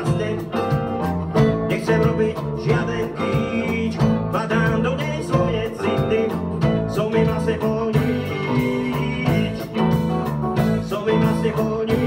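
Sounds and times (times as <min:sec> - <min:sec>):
drum kit steady beat: 0:00.0 - 0:12.0
electric bass: 0:00.0 - 0:12.0
electric guitars: 0:00.0 - 0:12.0.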